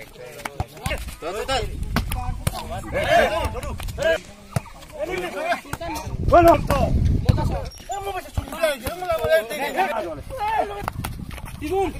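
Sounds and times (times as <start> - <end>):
men calling out: 7.6 - 10.9.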